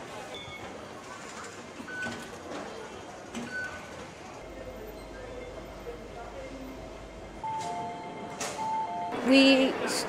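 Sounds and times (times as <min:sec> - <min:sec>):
faint background chatter: 0:00.0 - 0:07.4.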